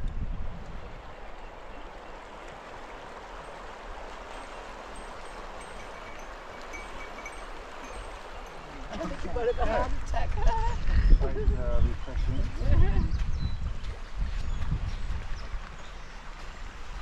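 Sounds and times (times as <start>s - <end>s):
wind rumble on microphone: 0.0s - 2.3s, 3.9s - 17.0s
river flowing over stones: 0.7s - 10.1s.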